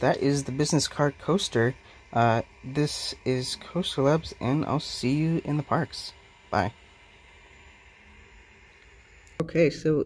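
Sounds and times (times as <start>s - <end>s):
low even hiss: 0.0s - 10.0s.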